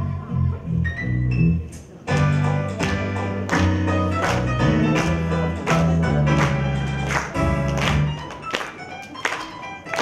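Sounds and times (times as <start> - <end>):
instrumental pop backing track: 0.0 - 10.0.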